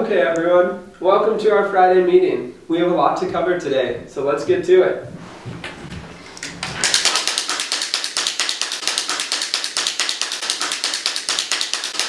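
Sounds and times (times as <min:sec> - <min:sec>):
wind-up toys clicking rapidly: 0:06.8 - 0:12.0.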